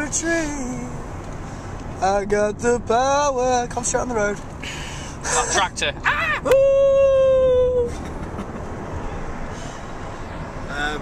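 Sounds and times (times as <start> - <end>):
car road and engine rumble: 0.0 - 11.0.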